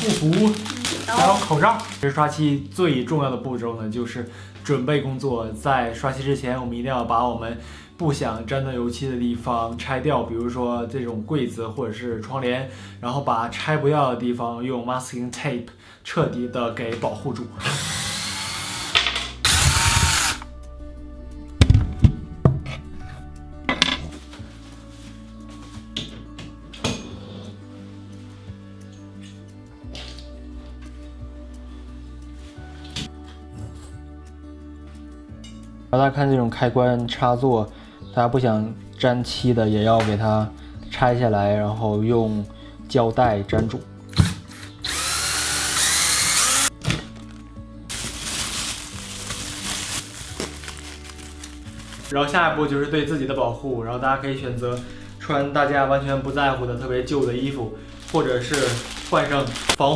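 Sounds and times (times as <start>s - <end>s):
cordless drill running: 17.6s - 20.5s, 44.8s - 46.7s.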